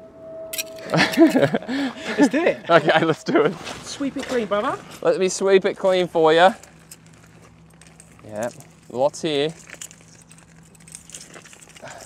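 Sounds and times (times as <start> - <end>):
small metal clicks and clinks: 0.6 - 1.4, 7.8 - 12.0
magnet dragged over gravel: 5.9 - 12.0.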